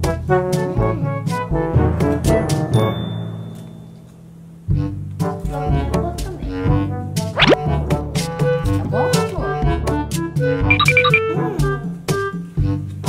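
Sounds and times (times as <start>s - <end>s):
music with bouncy bass line: 10.7s - 11.3s.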